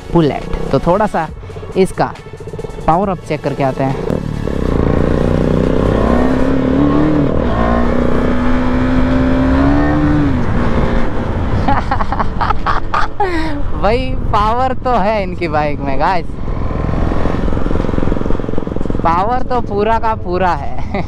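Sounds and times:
motorcycle engine accelerating: 0:00.0 - 0:21.0
road and wind noise: 0:00.0 - 0:21.0.

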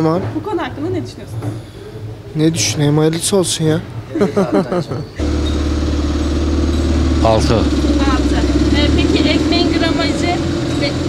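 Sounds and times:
vehicle engine idling: 0:05.2 - 0:11.0.

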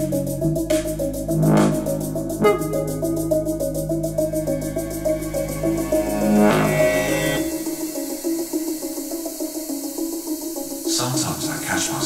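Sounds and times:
song over loudspeakers: 0:01.4 - 0:03.2.

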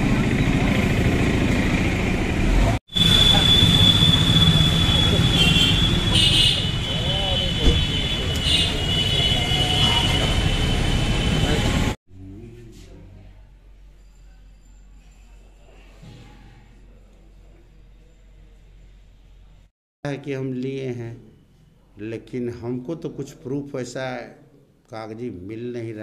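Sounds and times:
traffic noise: 0:00.0 - 0:12.0.

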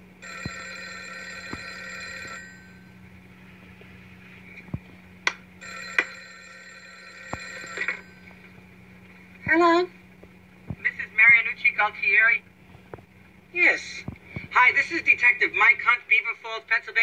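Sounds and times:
telephone ringing: 0:00.2 - 0:03.0, 0:05.6 - 0:08.6.

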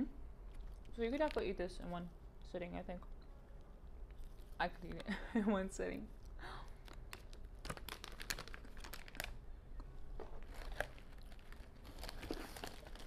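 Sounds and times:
plastic snack bag crinkling: 0:00.6 - 0:01.6, 0:06.7 - 0:09.4, 0:10.3 - 0:13.0.

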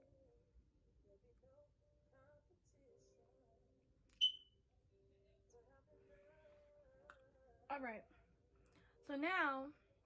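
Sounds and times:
faint singing: 0:00.0 - 0:04.2, 0:05.0 - 0:09.1.

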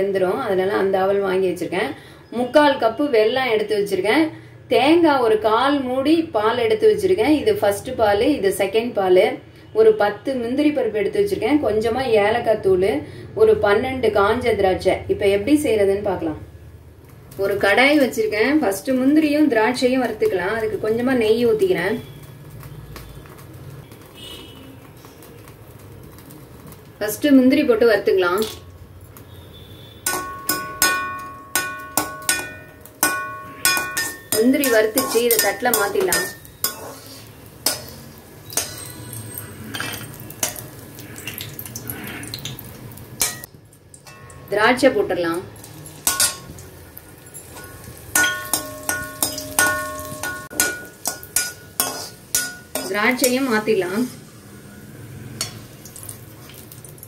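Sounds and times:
metal ladle knocking metal pan: 0:30.0 - 0:36.8, 0:46.0 - 0:46.6, 0:47.5 - 0:53.5
ladle scraping metal pan: 0:30.1 - 0:40.6, 0:47.4 - 0:55.6
faint high chirp: 0:38.4 - 0:39.5.

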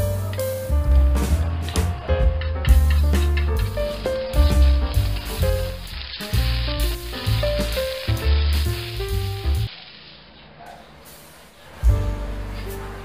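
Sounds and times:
background music with bass line: 0:00.0 - 0:09.7, 0:11.8 - 0:13.0
eggs sizzling in a wok: 0:02.7 - 0:10.2.

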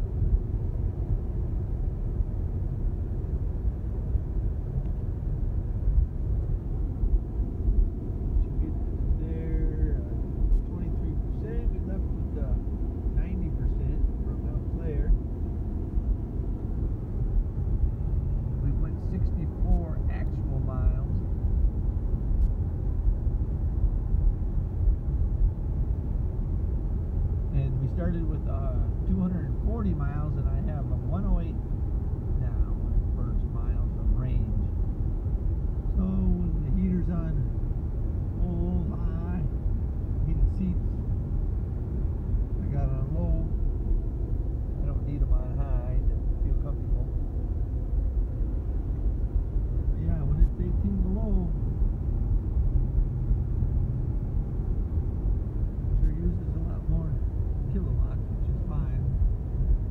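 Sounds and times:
road and tyre noise in car: 0:00.0 - 0:59.9
people talking: 0:08.4 - 0:15.2, 0:18.6 - 0:21.2, 0:27.5 - 0:31.6, 0:32.4 - 0:34.7, 0:35.9 - 0:37.5, 0:38.4 - 0:39.5, 0:40.2 - 0:40.9, 0:42.6 - 0:43.6, 0:44.8 - 0:47.1, 0:50.0 - 0:51.6, 0:55.9 - 0:59.0.

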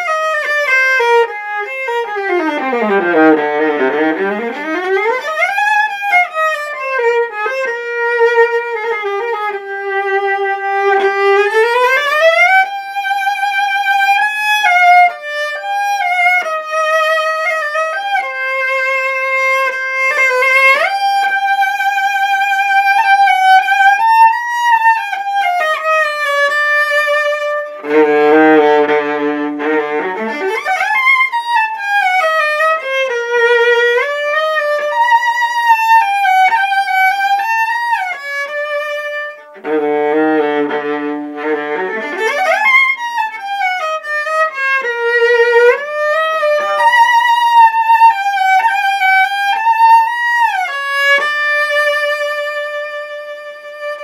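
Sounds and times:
solo bowed viola: 0:00.0 - 0:54.0.

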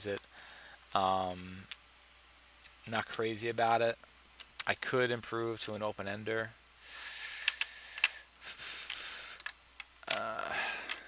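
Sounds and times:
hissing exhale: 0:06.8 - 0:09.4.

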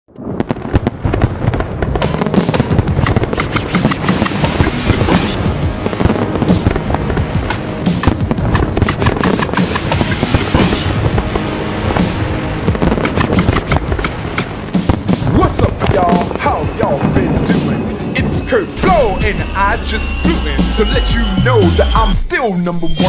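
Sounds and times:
fireworks popping and crackling: 0:00.1 - 0:22.2
music: 0:01.9 - 0:23.0.

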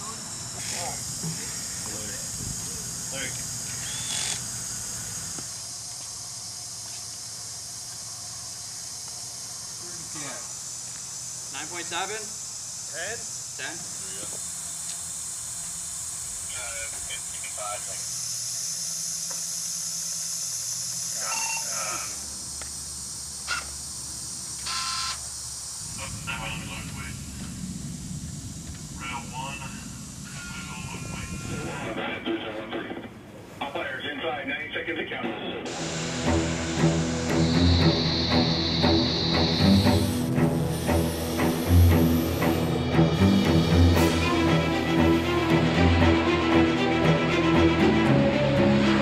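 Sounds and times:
steady high hiss: 0:00.0 - 0:49.0
indistinct voices: 0:21.1 - 0:22.3, 0:25.9 - 0:27.4, 0:29.0 - 0:49.0
background music with beat: 0:35.7 - 0:49.0.

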